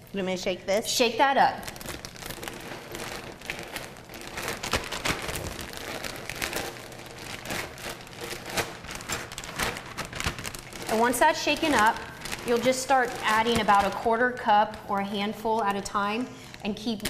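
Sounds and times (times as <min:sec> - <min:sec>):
plastic bag crinkling: 0:01.2 - 0:17.0
cheese shreds tumbling: 0:01.6 - 0:14.9.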